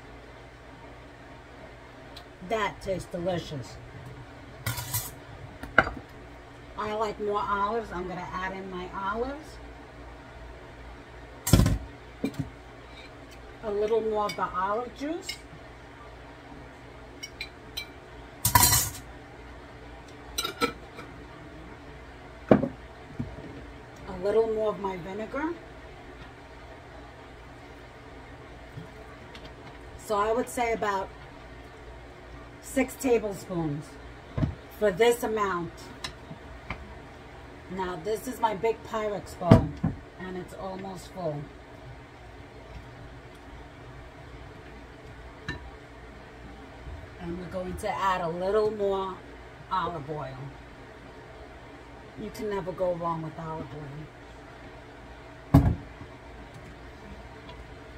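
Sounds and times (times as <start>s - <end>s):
low room hum: 0.0s - 57.9s.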